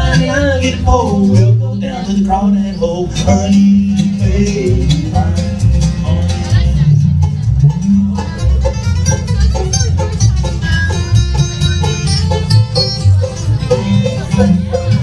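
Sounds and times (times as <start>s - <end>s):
acoustic guitar: 0.0s - 15.0s
banjo: 0.0s - 15.0s
upright bass: 0.0s - 15.0s
fiddle: 8.2s - 15.0s.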